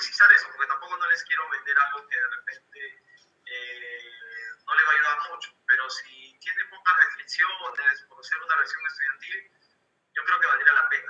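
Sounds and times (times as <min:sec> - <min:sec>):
person speaking: 0:00.0 - 0:09.6, 0:10.2 - 0:11.0.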